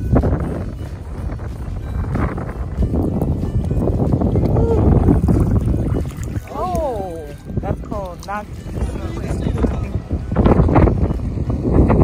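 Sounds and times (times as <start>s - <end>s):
wind buffeting the microphone: 0.0s - 12.0s.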